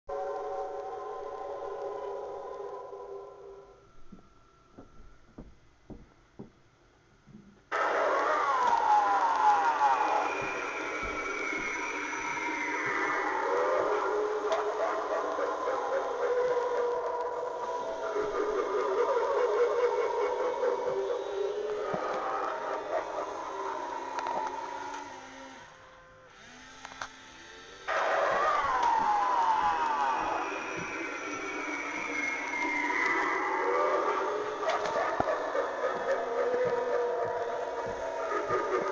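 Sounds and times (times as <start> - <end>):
wavering siren-like tones: 7.7 - 26.6, 27.8 - 38.9.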